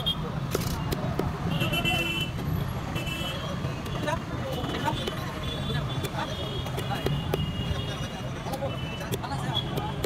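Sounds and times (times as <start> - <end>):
low rumble of traffic: 0.0 - 10.0
people talking: 3.4 - 10.0.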